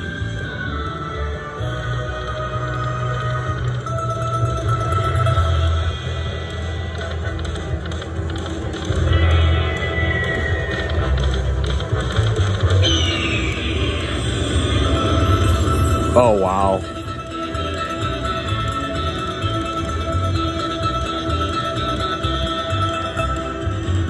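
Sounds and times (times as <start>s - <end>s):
slot machine electronic music: 2.0s - 24.0s
chiming win sounds: 15.2s - 17.1s.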